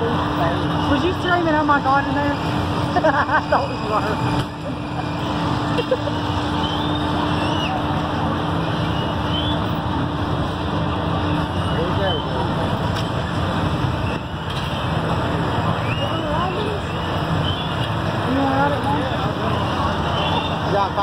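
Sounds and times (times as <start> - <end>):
fairground machinery engine rumble: 0.0 - 21.0
faint voices: 10.6 - 21.0.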